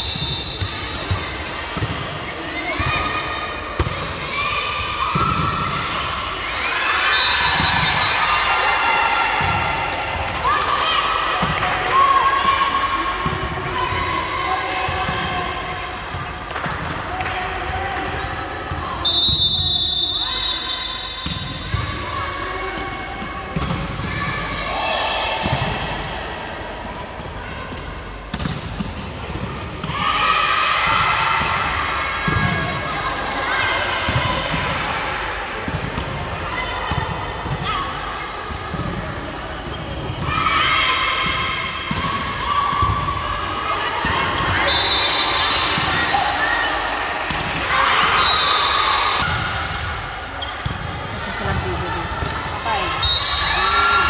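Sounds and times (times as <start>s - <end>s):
referee's whistle: 0.0s - 0.8s, 7.1s - 8.1s, 19.0s - 21.6s, 44.6s - 45.8s, 48.1s - 49.3s, 53.0s - 53.8s.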